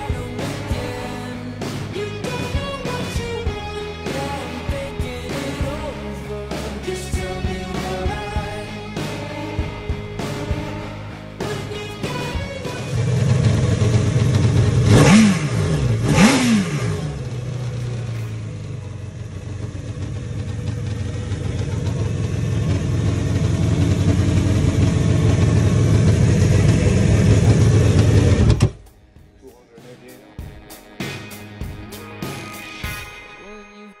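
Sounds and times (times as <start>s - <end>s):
jet boat engine revving: 12.7s - 18.8s, 20.8s - 28.8s.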